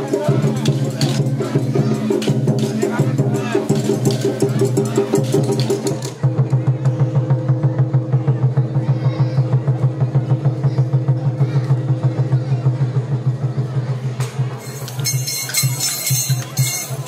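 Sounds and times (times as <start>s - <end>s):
festival drums beating fast: 0.0s - 17.0s.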